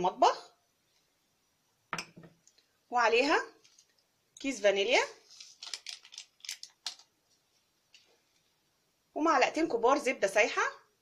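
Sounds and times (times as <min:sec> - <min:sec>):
paper sachet rustling: 0:05.2 - 0:07.1.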